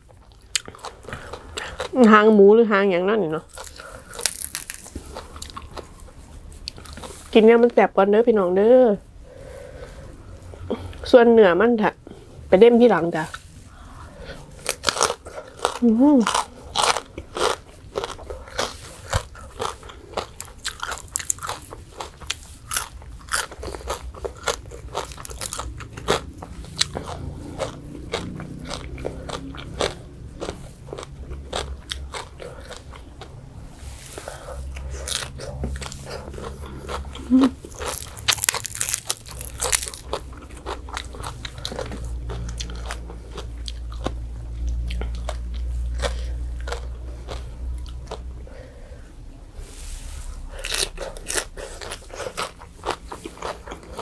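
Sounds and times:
crunching bites and chewing: 0:03.5 - 0:07.3, 0:14.4 - 0:48.4, 0:50.4 - 0:54.0.

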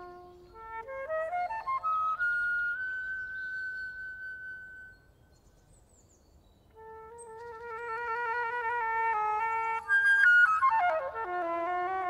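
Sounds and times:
flute holding a high note: 0:00.0 - 0:05.0.

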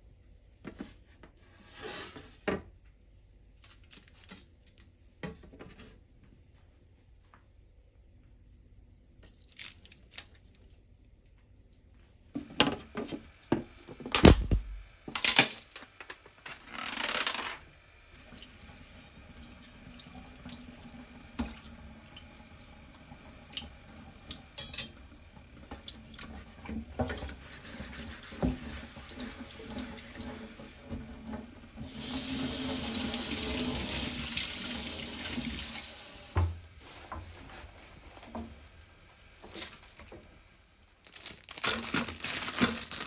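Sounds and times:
dishes clinking against sink: 0:24.5 - 0:25.0.

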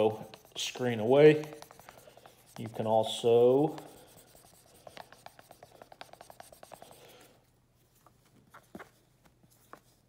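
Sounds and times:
marker squeaking on whiteboard: 0:00.0 - 0:07.3.

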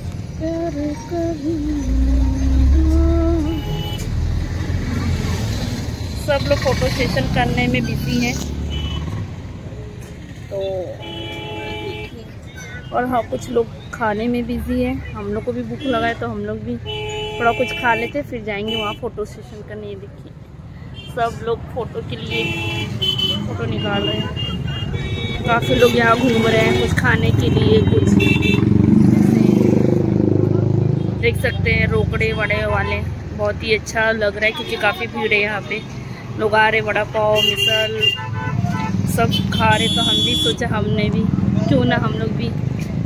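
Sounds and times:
low traffic hum: 0:00.0 - 0:43.0
vehicle horn: 0:03.4 - 0:04.2, 0:10.9 - 0:12.2, 0:16.8 - 0:19.0, 0:22.3 - 0:28.7, 0:37.3 - 0:40.6.

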